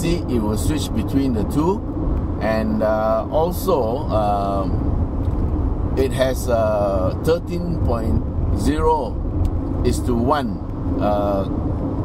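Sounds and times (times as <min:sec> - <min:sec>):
road and engine noise in car cabin: 0:00.0 - 0:12.0.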